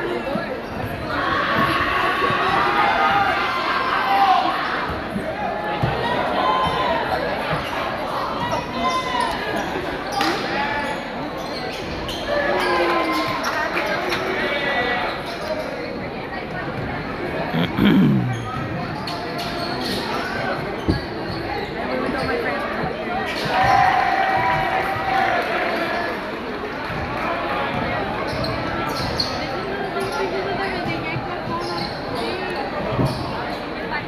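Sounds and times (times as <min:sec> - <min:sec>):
echoing crowd chatter: 0:00.0 - 0:34.0.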